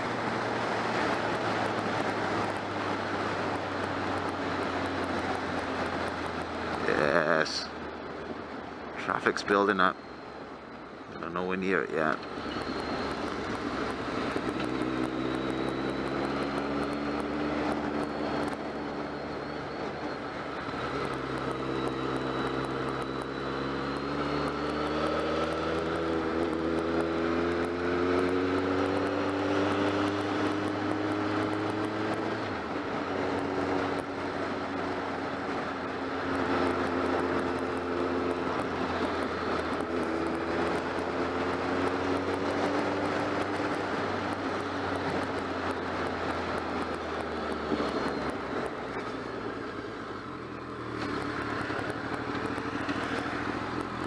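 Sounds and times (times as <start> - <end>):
motorcycle engine accelerating: 0.0 - 8.4, 11.8 - 54.0.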